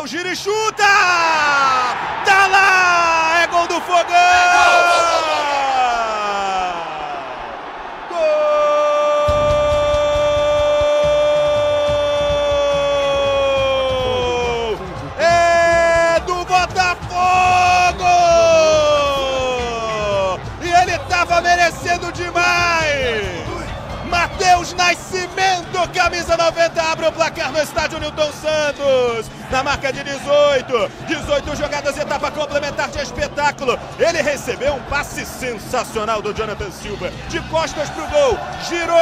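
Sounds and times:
radio commentator shouting goal: 0.0s - 7.2s, 8.1s - 39.0s.

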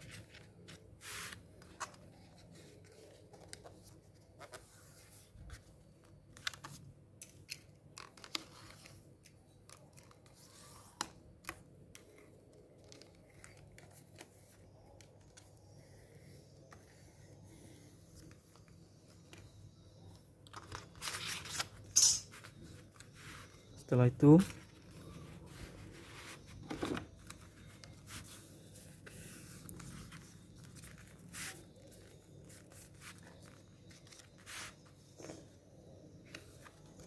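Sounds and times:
paper rustling: 0.0s - 9.0s, 24.4s - 35.4s.

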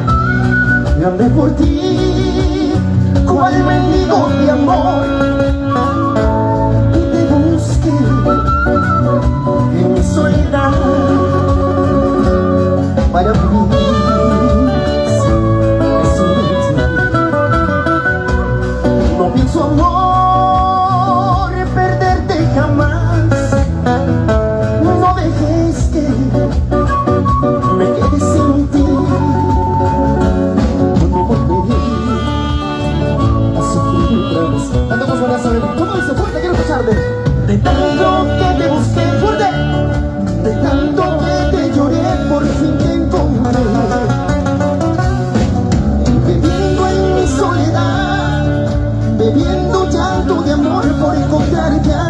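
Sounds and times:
saxophone: 0.0s - 21.6s, 25.8s - 52.0s
guitar: 0.0s - 52.0s
live band music: 0.0s - 52.0s
steady drum beat: 0.0s - 52.0s
strong bass line: 0.0s - 52.0s.

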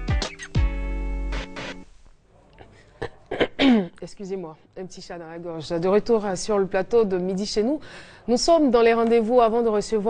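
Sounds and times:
woman clearing her throat: 2.6s - 4.0s
woman speaking: 3.8s - 10.0s.

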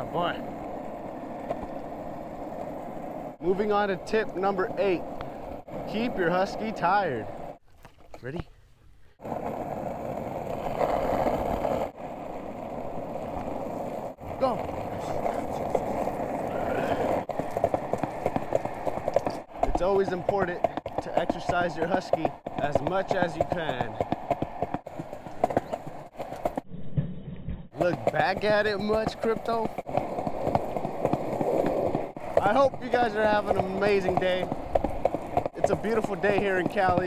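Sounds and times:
running footsteps on pavement: 0.0s - 8.4s, 9.2s - 26.7s, 27.8s - 37.0s
wind and movement noise: 0.0s - 37.0s.

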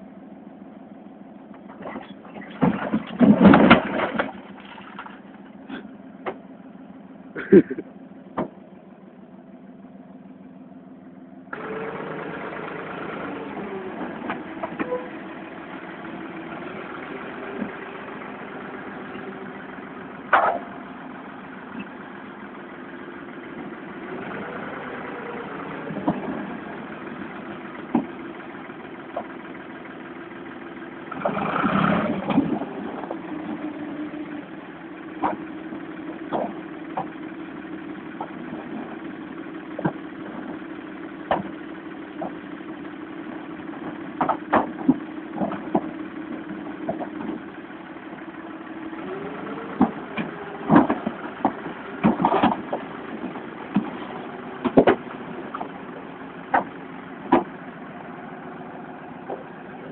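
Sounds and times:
tractor engine running: 0.0s - 59.9s
panels and timber cracking: 2.4s - 5.6s.

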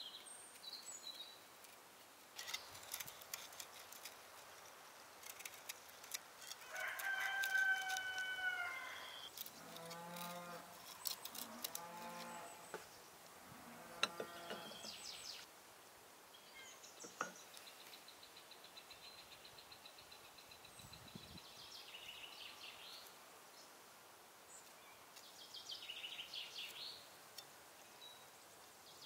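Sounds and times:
farm animals calling: 13.5s - 15.0s.

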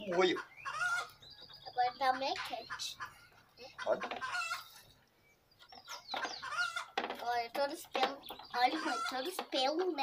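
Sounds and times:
chicken clucking: 2.6s - 4.8s, 5.6s - 7.0s, 8.4s - 9.2s.

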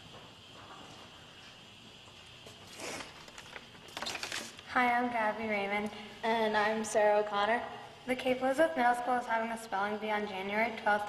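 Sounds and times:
paper rustling: 2.7s - 4.6s.

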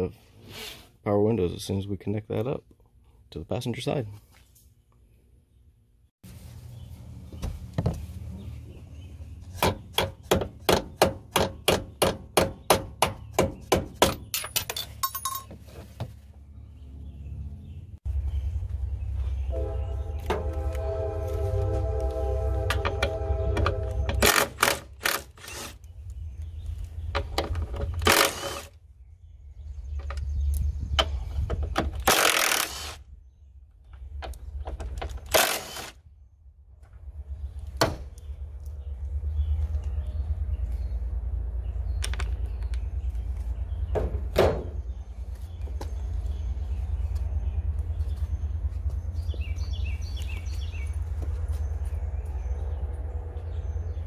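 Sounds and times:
tool clatter: 14.1s - 15.6s
low steady rumble: 14.8s - 31.7s, 36.0s - 54.0s
droning tone: 19.3s - 24.3s.

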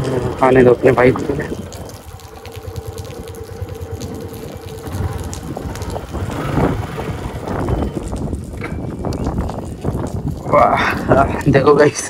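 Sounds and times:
motorcycle engine idling: 0.0s - 10.2s
wind buffeting microphone: 0.0s - 12.0s.

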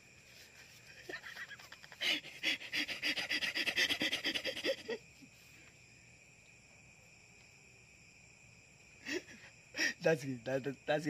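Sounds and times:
man's stifled breathy laughter: 0.9s - 5.1s.

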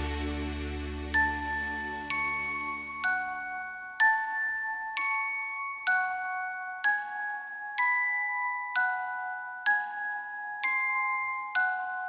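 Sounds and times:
low sustained chord: 0.0s - 3.0s
bell-like chime notes: 1.1s - 12.0s.

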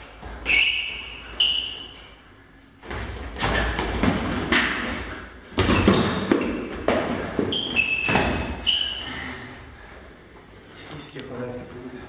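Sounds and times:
stamping footwork on gym floor: 2.8s - 8.7s.

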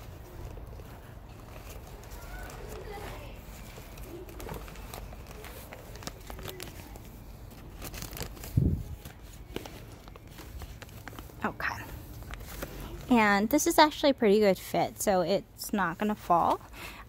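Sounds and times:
plastic bag crinkling: 0.0s - 13.6s.

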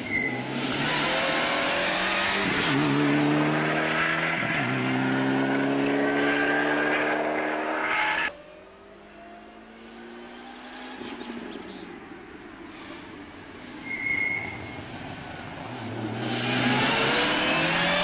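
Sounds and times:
rally car engine accelerating: 0.4s - 8.3s, 15.8s - 18.0s.

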